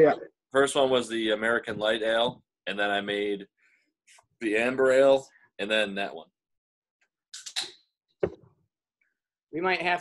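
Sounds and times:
sharp knock: 8.2s - 8.5s.

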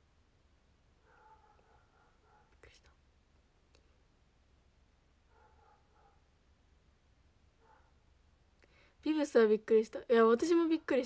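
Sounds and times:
faint click: 3.7s - 4.0s.

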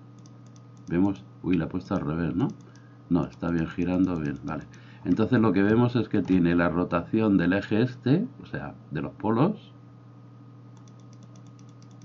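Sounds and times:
steady low hum: 0.0s - 12.0s
computer key clicking rapidly: 0.2s - 1.2s, 1.9s - 6.4s, 10.8s - 12.0s.

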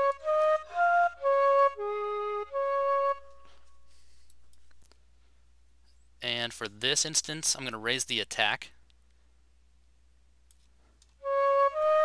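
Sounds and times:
flute melody: 0.0s - 4.2s, 11.2s - 12.0s.

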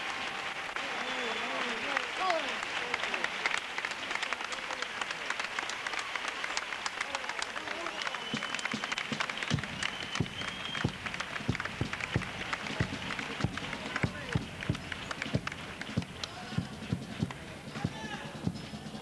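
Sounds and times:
audience clapping: 0.0s - 18.2s
short high whistles: 8.0s - 11.0s
heavy footsteps on wooden stage: 9.2s - 18.6s.

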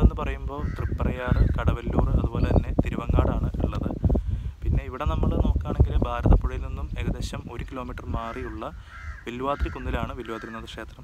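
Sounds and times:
bird calling: 0.5s - 2.7s, 8.1s - 11.0s
man speaking: 4.6s - 11.0s.

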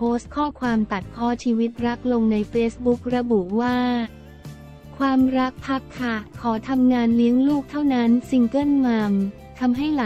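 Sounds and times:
woman narrating: 0.0s - 4.2s, 4.9s - 10.0s
quiet background music: 0.0s - 10.0s.

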